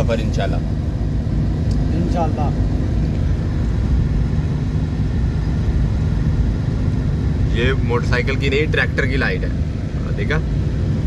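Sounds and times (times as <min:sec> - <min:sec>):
road and engine rumble inside car: 0:00.0 - 0:11.0.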